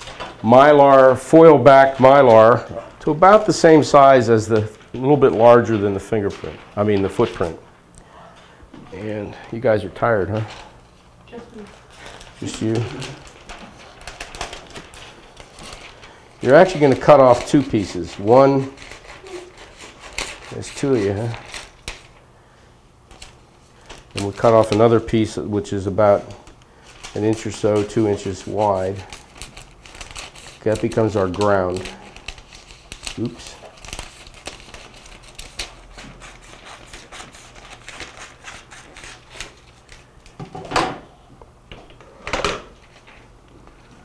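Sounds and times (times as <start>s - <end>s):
plastic film clicks and rustles: 11.7s - 19.2s, 23.1s - 25.0s, 26.2s - 40.4s.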